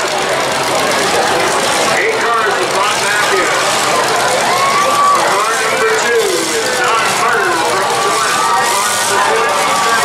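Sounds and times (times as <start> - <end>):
car engines running: 0.0 - 10.0
crowd noise and voices: 0.0 - 10.0.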